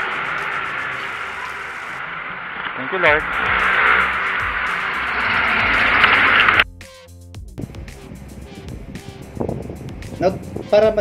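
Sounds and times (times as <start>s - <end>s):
street background hiss: 0.0s - 11.0s.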